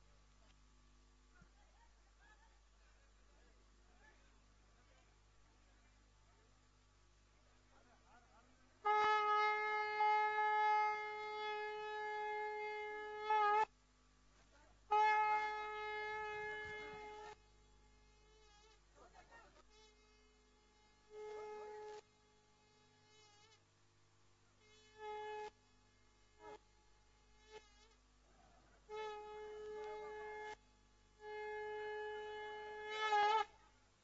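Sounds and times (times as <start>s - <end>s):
buzzing reedy wind instrument: 8.8s - 13.7s, 14.9s - 17.4s, 31.2s - 33.6s
conch shell blown: 8.8s - 13.7s, 14.9s - 17.4s, 31.2s - 33.6s.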